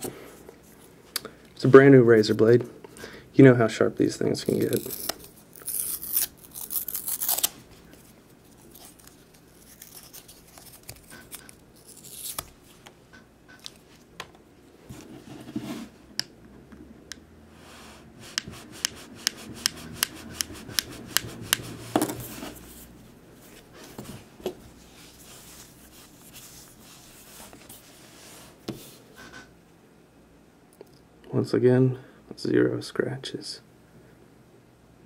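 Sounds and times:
paper wrapper crinkling: 0:04.4 - 0:12.7.

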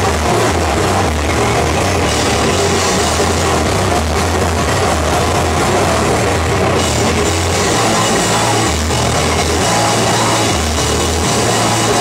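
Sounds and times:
bass guitar drone: 0:00.0 - 0:12.0
heavy rock band playing: 0:00.0 - 0:12.0.

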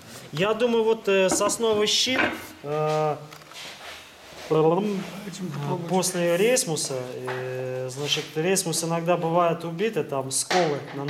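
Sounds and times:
man speaking: 0:00.3 - 0:03.4, 0:04.4 - 0:11.0.

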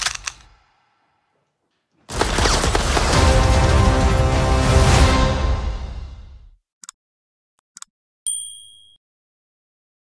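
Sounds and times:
notification bell ding: 0:08.3 - 0:09.0.

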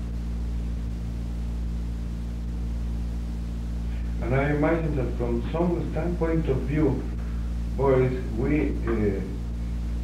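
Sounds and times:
low electrical hum with tones: 0:00.0 - 0:10.0
recording hiss: 0:00.0 - 0:10.0.

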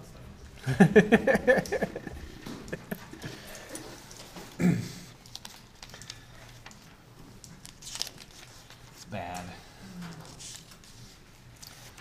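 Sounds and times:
paper handling: 0:05.2 - 0:12.0.

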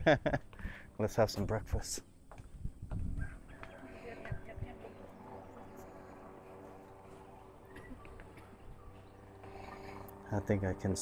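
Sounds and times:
soft low thumps: 0:01.3 - 0:03.3.

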